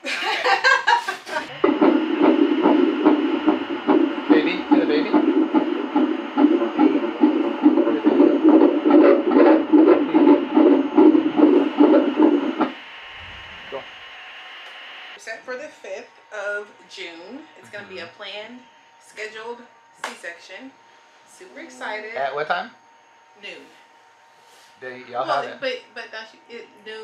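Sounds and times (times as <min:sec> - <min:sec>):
fetal heartbeat on doppler: 0:01.5 - 0:13.8.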